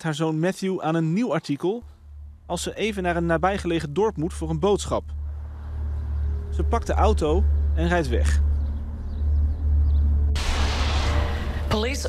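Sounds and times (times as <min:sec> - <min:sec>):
low rumbling soundtrack drone: 0:01.8 - 0:12.0
sudden loud rush of noise: 0:10.2 - 0:12.0.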